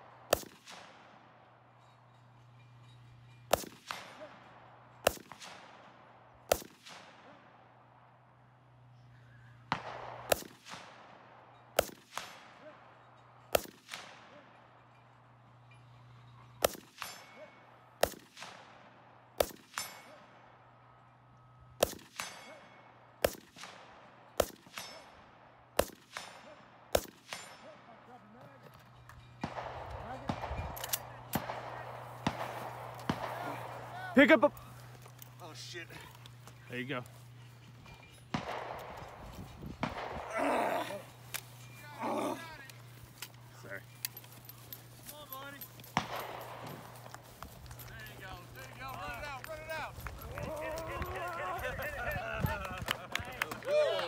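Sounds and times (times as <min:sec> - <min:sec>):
rifle shots with echo: 0:00.0 - 0:01.5, 0:03.5 - 0:08.4, 0:09.6 - 0:14.8, 0:16.6 - 0:21.0, 0:21.8 - 0:28.2, 0:29.4 - 0:35.7, 0:38.3 - 0:41.2, 0:43.9 - 0:49.3
ring of struck steel targets: 0:09.7 - 0:18.8, 0:19.4 - 0:21.1, 0:21.7 - 0:28.1, 0:28.8 - 0:34.1, 0:43.6 - 0:48.6
gear rustling: 0:40.4 - 0:50.8.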